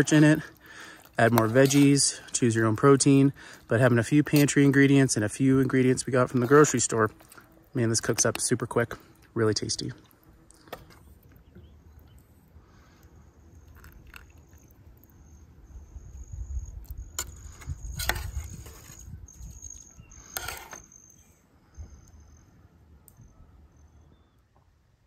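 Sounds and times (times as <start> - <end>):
spork scraping a metal pot: 1.1 - 3.6, 4.2 - 7.4, 17.1 - 19.6, 20.3 - 20.9
crickets trilling: 11.6 - 22.6.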